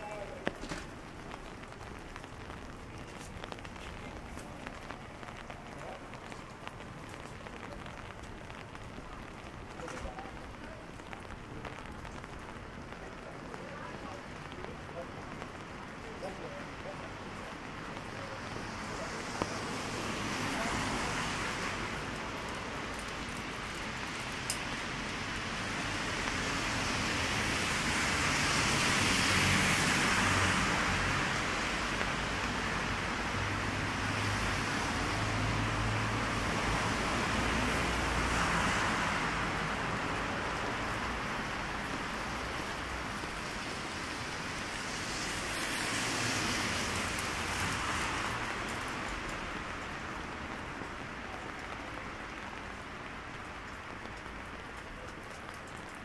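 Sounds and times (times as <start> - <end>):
cars passing on wet road: 0.0 - 56.0
rain on street: 0.0 - 56.0.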